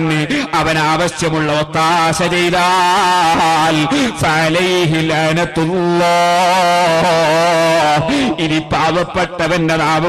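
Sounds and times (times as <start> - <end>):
man chanting a long note: 1.9 - 8.8.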